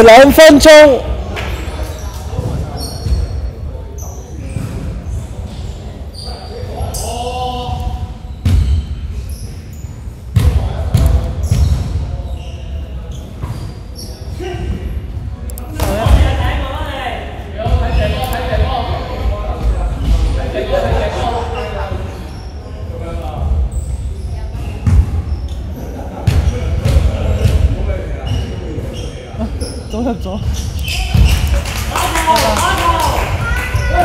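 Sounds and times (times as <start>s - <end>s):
players' voices: 0.0s - 8.3s.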